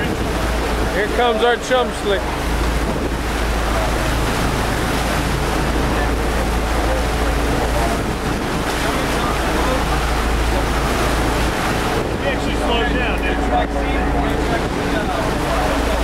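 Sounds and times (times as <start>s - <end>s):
boat engine drone: 0.0s - 16.0s
water rushing past hull: 0.0s - 16.0s
wind buffeting microphone: 0.0s - 16.0s.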